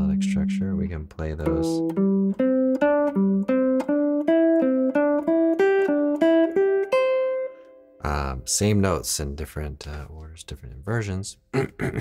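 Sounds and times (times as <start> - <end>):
electric guitar picked notes: 0.0 - 8.1.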